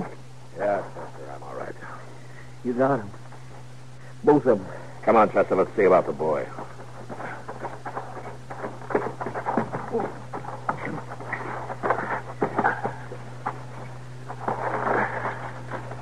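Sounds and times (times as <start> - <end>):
low recording hum: 0.0 - 16.0
footsteps crunching over gravel: 5.0 - 16.0.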